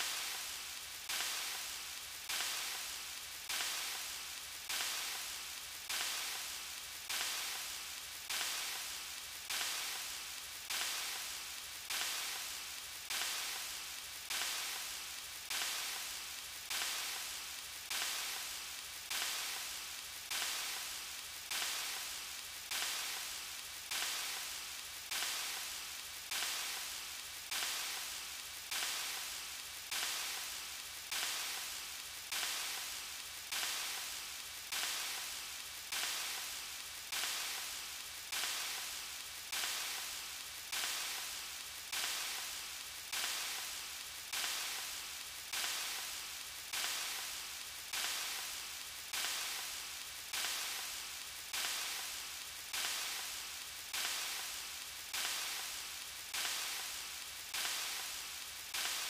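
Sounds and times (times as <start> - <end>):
short raspy hiss: 0.0 - 59.0.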